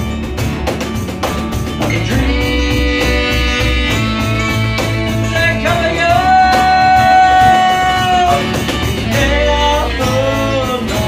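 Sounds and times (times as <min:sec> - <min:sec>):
cajon beat: 0:00.0 - 0:11.0
lead melody: 0:00.0 - 0:11.0
strummed acoustic guitars: 0:00.0 - 0:11.0
upright bass: 0:00.0 - 0:11.0.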